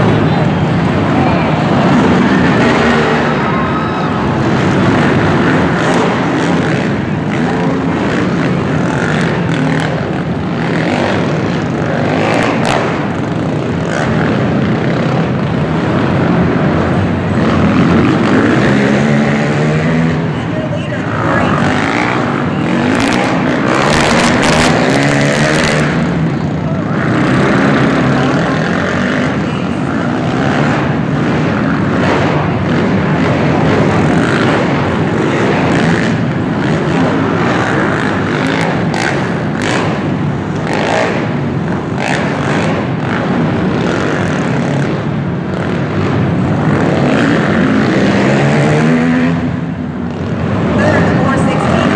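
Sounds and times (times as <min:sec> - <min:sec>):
quad engines revving: 0:00.0 - 0:51.9.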